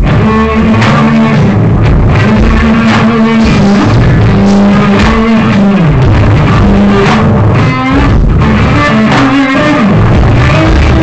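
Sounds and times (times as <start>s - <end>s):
electric guitar: 0.0s - 11.0s
live rock band playing: 0.0s - 11.0s
sharp drum hits: 0.8s - 9.4s.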